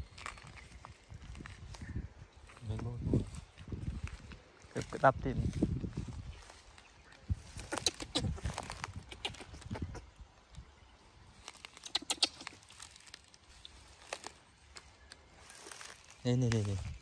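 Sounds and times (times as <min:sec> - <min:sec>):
dry twigs snapping: 0:00.0 - 0:02.6, 0:07.4 - 0:09.8, 0:11.3 - 0:17.0
footsteps through tall grass: 0:00.0 - 0:09.6, 0:11.1 - 0:17.0
leaves rustling: 0:00.0 - 0:17.0.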